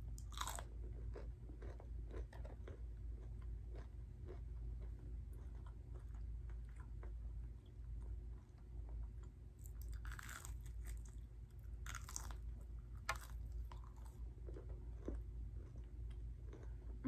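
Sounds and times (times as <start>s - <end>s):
crunching fried chicken: 0.0s - 17.0s.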